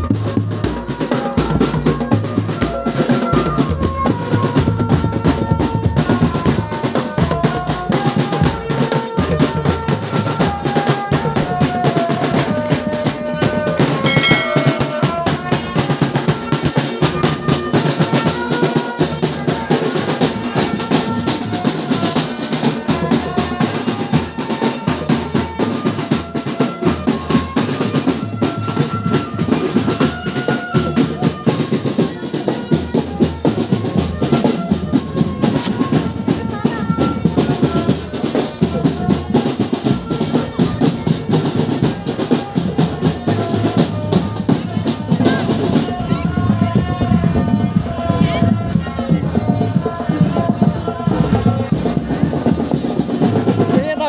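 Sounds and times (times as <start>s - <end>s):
marching drums beating: 0.0s - 54.0s
melody line: 14.0s - 15.4s.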